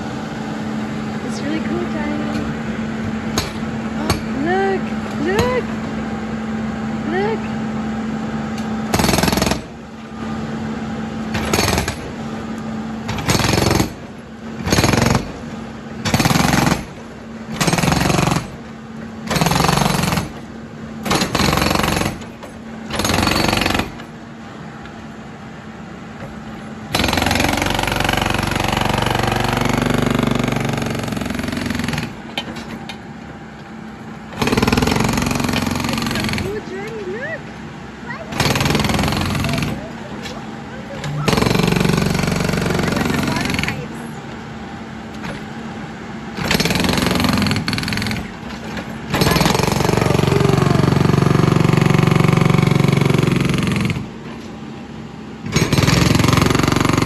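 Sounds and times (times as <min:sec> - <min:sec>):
backhoe engine running: 0:00.0 - 0:57.0
hydraulic impact hammer breaking pavement: 0:03.3 - 0:04.4, 0:08.6 - 0:09.8, 0:11.3 - 0:12.3, 0:13.0 - 0:24.2, 0:26.9 - 0:32.8, 0:34.3 - 0:37.0, 0:38.3 - 0:39.9, 0:41.0 - 0:44.0, 0:46.3 - 0:54.2, 0:55.4 - 0:57.0.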